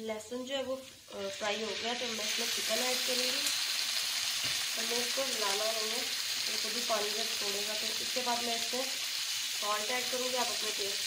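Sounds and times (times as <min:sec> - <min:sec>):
chicken sizzling in frying pan: 0:00.9 - 0:11.0.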